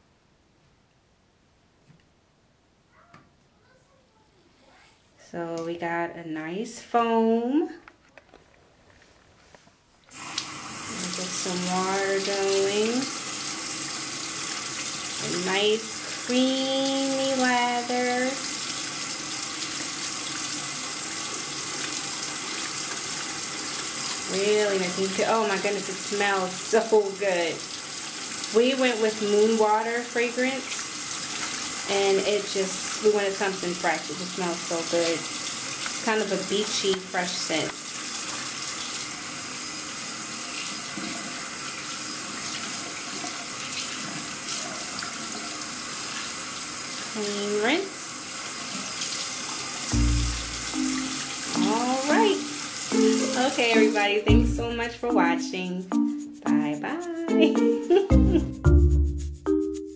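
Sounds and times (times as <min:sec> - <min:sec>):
faucet running into sink: 0:10.1 - 0:54.9.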